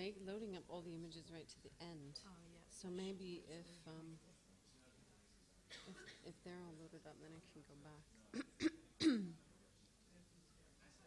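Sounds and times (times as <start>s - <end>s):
person coughing: 8.4s - 9.4s.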